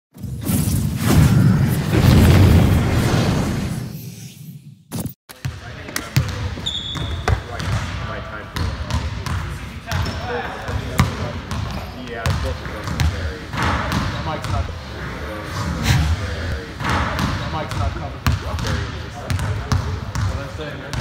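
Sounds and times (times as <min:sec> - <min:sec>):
booming whoosh: 0:01.0 - 0:04.0
players' voices: 0:05.3 - 0:21.0
basketballs bouncing on hardwood: 0:08.6 - 0:14.6, 0:16.8 - 0:21.0.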